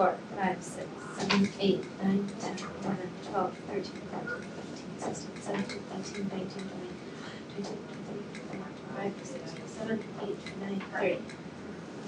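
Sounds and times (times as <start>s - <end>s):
faint voices: 0.0s - 11.3s.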